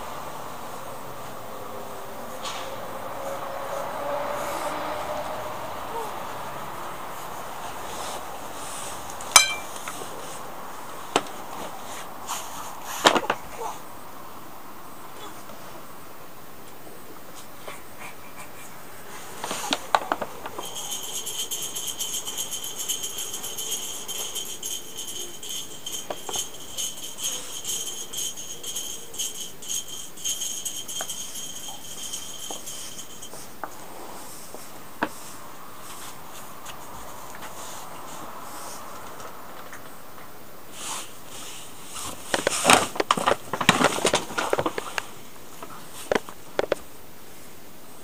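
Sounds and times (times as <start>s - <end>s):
metallic jingling of small bells: 7.8s - 10.4s, 19.3s - 34.5s.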